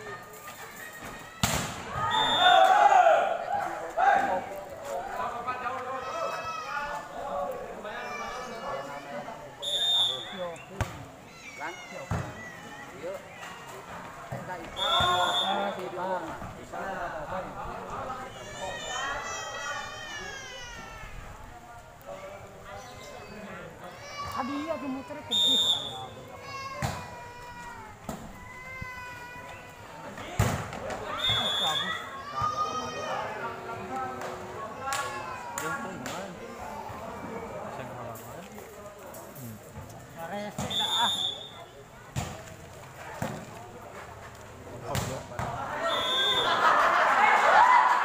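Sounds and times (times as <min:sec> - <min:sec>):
spectators' voices and shouts: 0:00.0 - 0:48.0
referee's whistle: 0:02.0 - 0:02.6, 0:09.6 - 0:10.5, 0:14.7 - 0:15.8, 0:25.3 - 0:26.1, 0:31.1 - 0:32.0, 0:40.6 - 0:41.6, 0:45.8 - 0:46.6.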